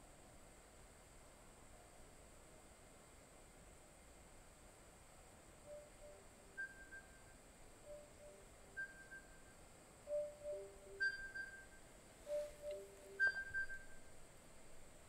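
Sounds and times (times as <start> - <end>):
electronic timer alarm tune: 10.1 - 14.0.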